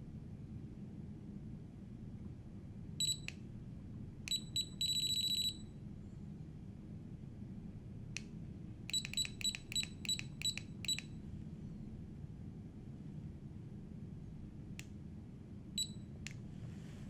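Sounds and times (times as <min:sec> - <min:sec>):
electronic key-press beeps: 0:03.0 - 0:03.3, 0:04.3 - 0:05.6, 0:08.9 - 0:11.1, 0:15.8 - 0:16.0.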